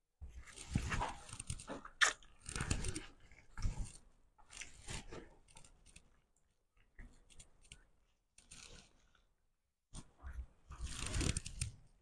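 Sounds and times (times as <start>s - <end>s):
wet chewing and lip-smacking: 1.9s - 2.4s.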